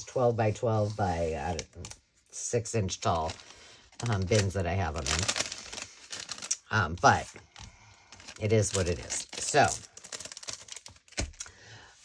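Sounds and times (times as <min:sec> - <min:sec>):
papers in plastic bag clicking: 0:03.0 - 0:11.6.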